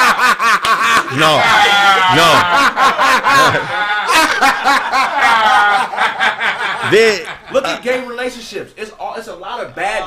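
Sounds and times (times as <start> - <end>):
men laughing: 0.0 - 7.9.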